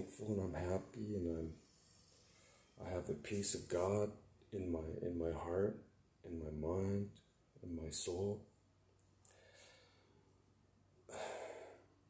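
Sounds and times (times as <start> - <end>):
man talking: 0.0 - 1.6, 2.8 - 8.5
man breathing: 9.2 - 10.3, 11.1 - 12.0.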